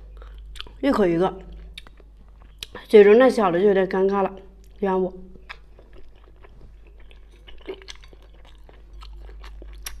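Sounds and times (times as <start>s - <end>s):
person chewing: 0.0s - 0.8s, 1.4s - 2.9s, 4.6s - 10.0s.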